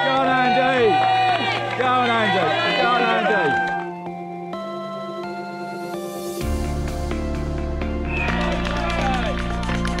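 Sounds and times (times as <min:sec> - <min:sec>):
spectators shouting and cheering: 0:00.0 - 0:03.9, 0:08.0 - 0:09.5.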